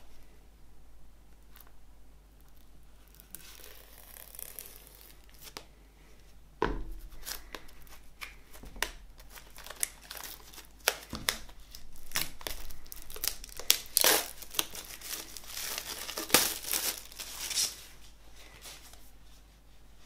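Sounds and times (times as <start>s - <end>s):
plastic wrap crinkling: 2.4s - 5.6s, 7.1s - 19.0s.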